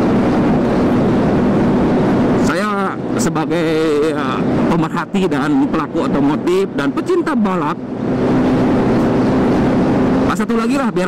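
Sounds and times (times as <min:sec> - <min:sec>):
road noise: 0:00.0 - 0:11.0
wind rush: 0:00.0 - 0:11.0
scooter engine hum: 0:07.6 - 0:11.0.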